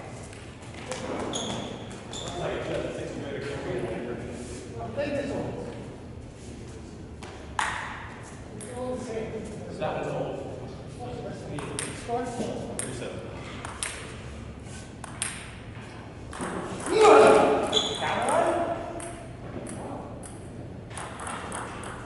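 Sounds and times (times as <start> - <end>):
table tennis ball bouncing: 11.6 - 12.0, 13.6 - 14.2, 15.0 - 15.6, 16.3 - 17.0, 17.7 - 22.0
loud voice: 16.9 - 17.6.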